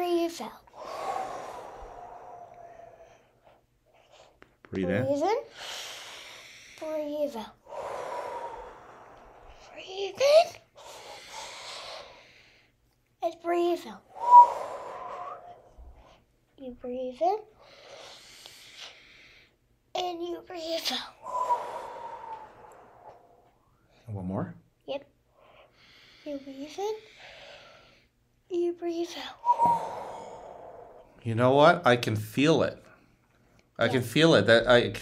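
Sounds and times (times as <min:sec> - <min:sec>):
people breathing slowly: 0:00.7 - 0:04.5, 0:07.5 - 0:09.9, 0:10.6 - 0:12.8, 0:14.1 - 0:16.3, 0:21.2 - 0:24.0, 0:29.4 - 0:31.3.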